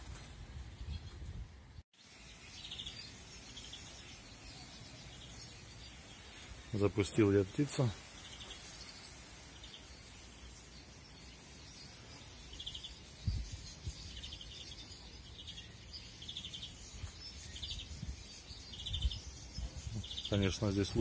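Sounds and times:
steady outdoor hiss: 0.0 - 21.0
finches chirping: 2.0 - 21.0.

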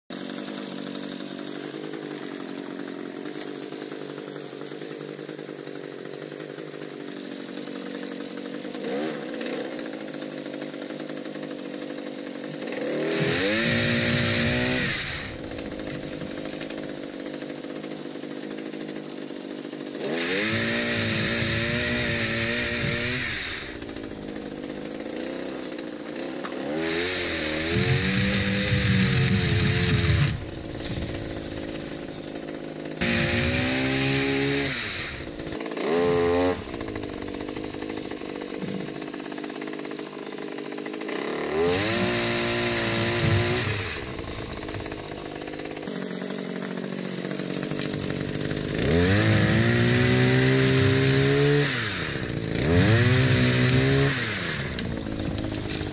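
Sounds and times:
chainsaw engine revving: 0.1 - 55.9.

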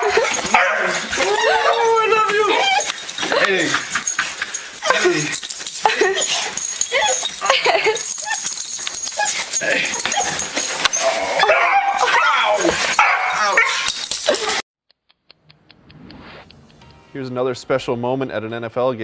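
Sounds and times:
dog whining and yipping: 0.0 - 14.6
man talking: 1.2 - 3.9, 17.1 - 19.0.

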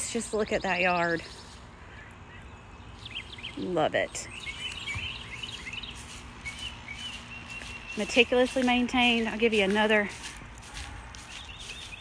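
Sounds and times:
songbirds chirping: 0.0 - 12.0.

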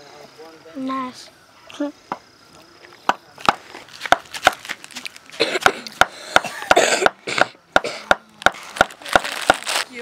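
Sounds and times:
hand axe chopping wood: 3.1 - 4.8.

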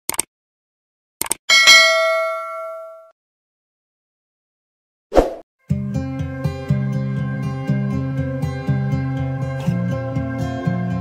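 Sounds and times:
bell-like notification ding: 1.5 - 3.1
music: 5.6 - 11.0.

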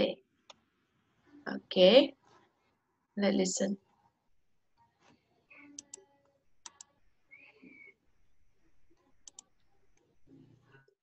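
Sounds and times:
sharp clicks: 9.2 - 9.5.

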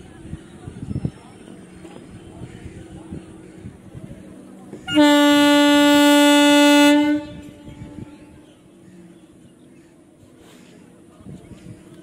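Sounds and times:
train horn blast: 4.8 - 8.1.

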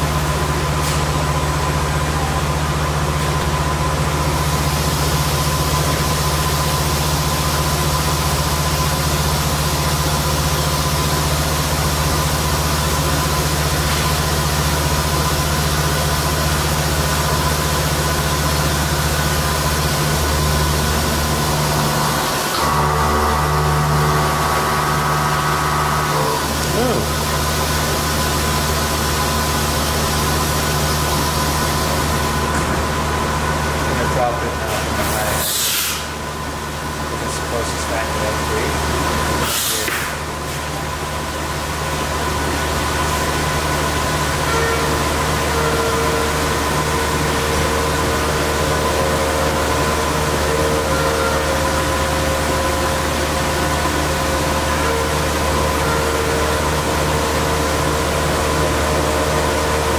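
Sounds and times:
machining centre humming: 0.0 - 59.9.

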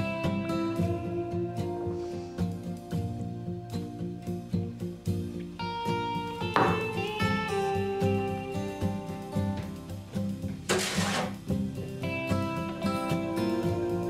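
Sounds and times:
plucked acoustic guitar music: 0.0 - 14.0.

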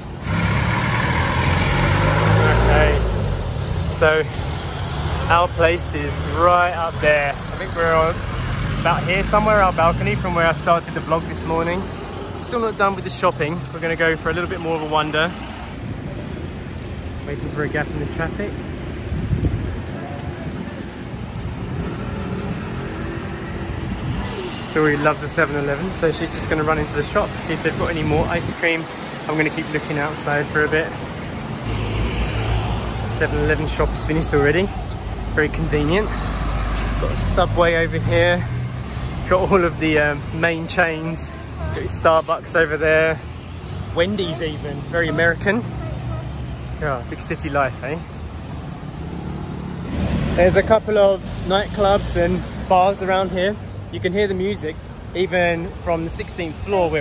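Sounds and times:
road noise: 0.0 - 57.0
vehicles passing: 0.0 - 57.0.

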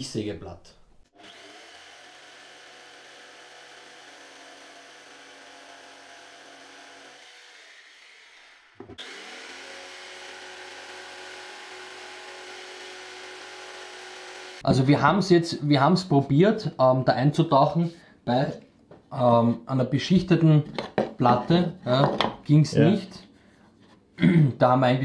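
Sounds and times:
jigsaw running: 1.2 - 14.6.

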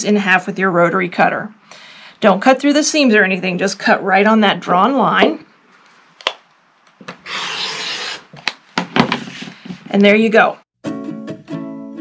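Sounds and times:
rotary cutter slicing fabric: 7.2 - 8.3.

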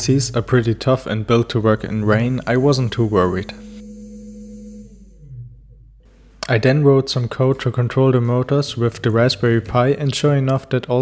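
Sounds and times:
electric motor humming: 2.0 - 6.2.

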